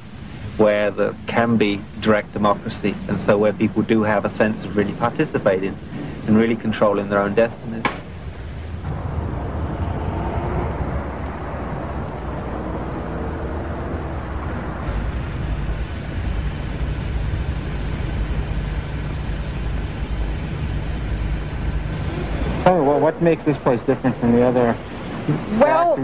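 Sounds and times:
faint hum: 0:00.0 - 0:26.0
low mechanical rumble: 0:00.0 - 0:26.0.

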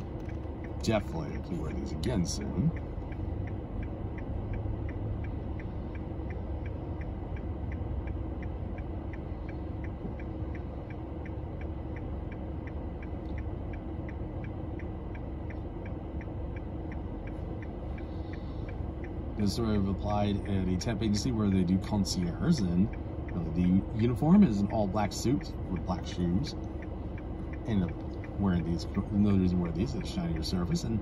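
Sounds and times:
engine and road rumble: 0:00.0 - 0:31.0
turn signal clicking: 0:00.0 - 0:31.0.

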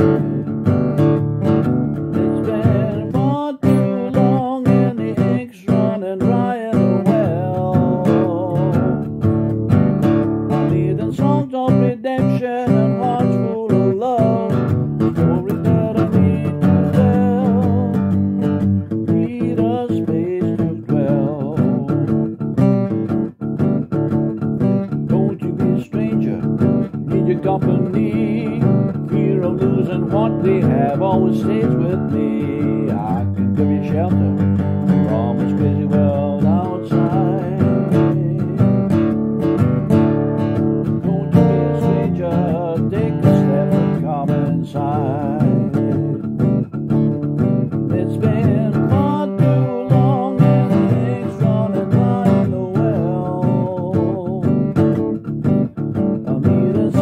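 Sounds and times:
man singing: 0:00.0 - 0:23.0, 0:24.6 - 0:57.0
acoustic guitar strumming: 0:00.0 - 0:57.0.

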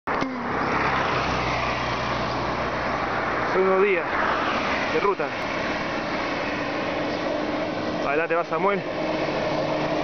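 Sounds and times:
car passing: 0:00.1 - 0:10.0.

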